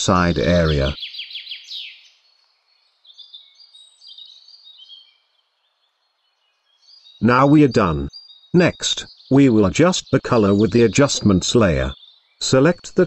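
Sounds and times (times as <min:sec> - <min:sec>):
faint bird chirps: 0:00.0 - 0:13.0.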